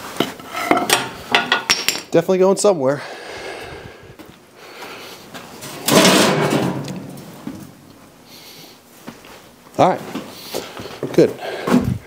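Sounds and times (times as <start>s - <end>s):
heavy metal clunk: 5.7s - 7.7s.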